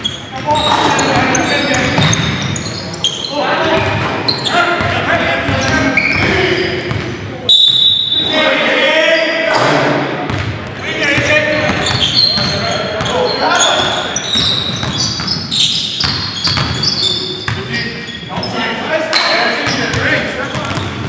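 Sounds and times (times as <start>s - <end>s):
players' voices echoing: 0.0s - 21.0s.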